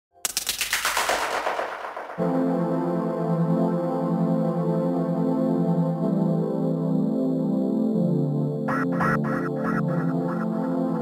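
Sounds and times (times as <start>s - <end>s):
rapid rattle of sharp cracks: 0.2s - 2.2s.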